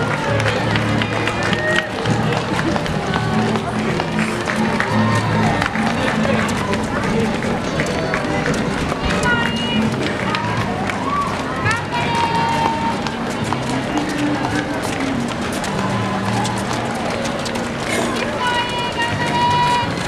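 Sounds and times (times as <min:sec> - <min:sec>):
music playing: 0:00.0 - 0:20.0
runners' footsteps on road: 0:00.0 - 0:20.0
spectators' voices: 0:00.0 - 0:20.0.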